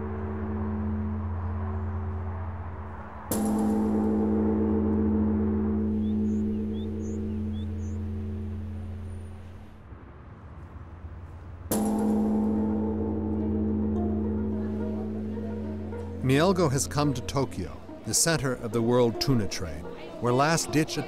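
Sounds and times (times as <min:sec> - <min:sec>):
large temple bell clanging: 0:00.0 - 0:09.7, 0:11.7 - 0:21.0.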